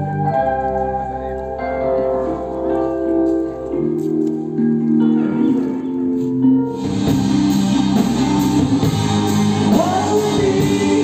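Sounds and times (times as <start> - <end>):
bass guitar: 0.0 - 11.0
electric guitar: 0.0 - 11.0
keyboard sustained chords: 0.0 - 11.0.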